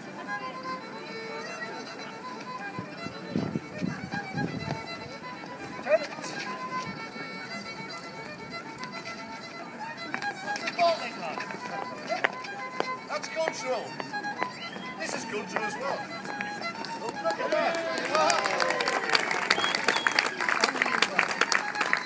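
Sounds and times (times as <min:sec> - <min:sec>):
onlookers talking: 0:00.0 - 0:22.0
solo fiddle playing dance tune: 0:00.0 - 0:22.0.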